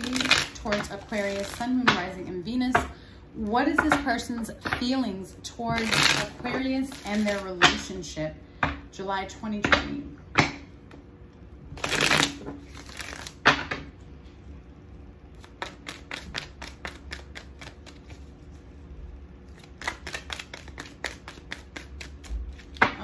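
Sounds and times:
cards being shuffled: 0.0 - 1.7, 5.8 - 7.5, 11.8 - 13.6, 15.3 - 18.8, 19.5 - 23.0.

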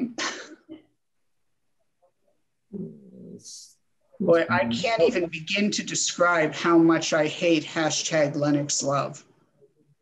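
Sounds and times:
person's voice over video call: 2.7 - 9.2.

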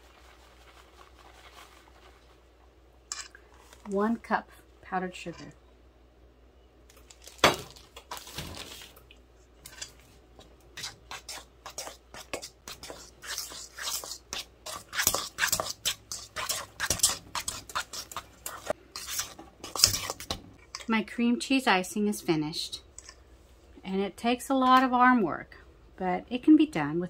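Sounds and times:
fork beating in metal bowl: 10.8 - 20.4.

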